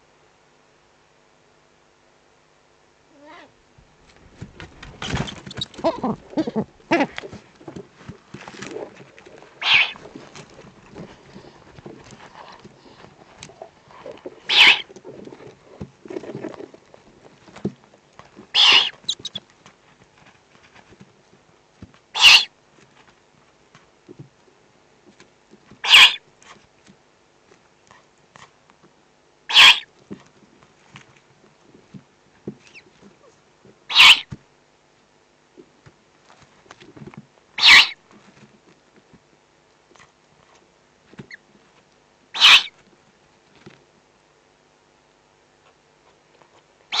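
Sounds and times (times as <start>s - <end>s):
faint rustling: 3.8s - 22.1s
owl rasping hiss: 9.6s - 10.0s, 14.4s - 14.9s, 18.5s - 19.4s, 22.2s - 22.5s, 25.8s - 26.2s, 29.5s - 29.9s, 33.9s - 34.4s, 37.6s - 38.0s, 42.4s - 42.8s.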